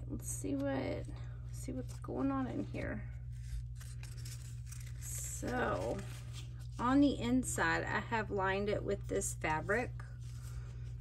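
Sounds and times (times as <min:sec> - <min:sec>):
rustle of paper and cloth: 0:01.8 - 0:07.2.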